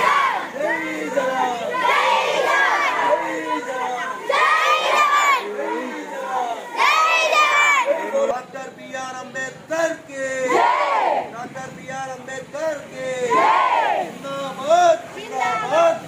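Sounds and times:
children shouting together: 0.0 - 0.7, 1.3 - 6.0, 6.6 - 8.2.

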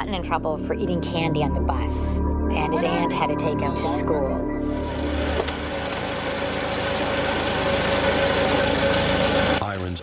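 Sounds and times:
car engine running: 4.6 - 10.0.

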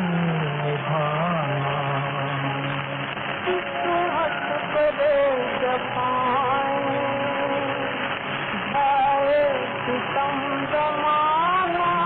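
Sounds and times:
old film song recording: 0.0 - 12.0.

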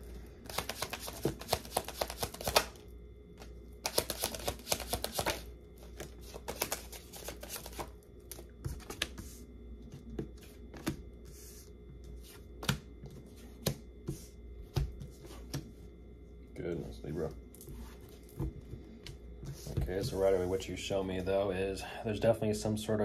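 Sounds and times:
cards shuffling: 0.5 - 2.8, 3.4 - 9.3.

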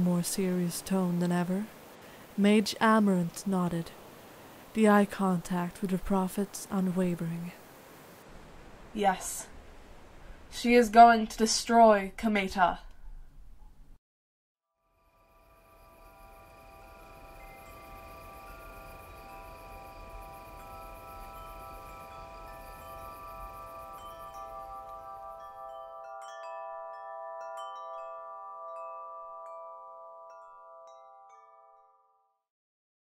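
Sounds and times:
shimmering chime tones: 14.8 - 32.4
tinkling chime strikes: 14.9 - 32.4.

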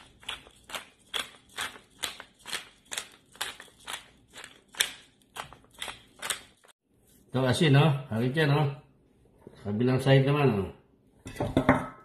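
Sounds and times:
pepper mill grinding: 0.0 - 6.7.

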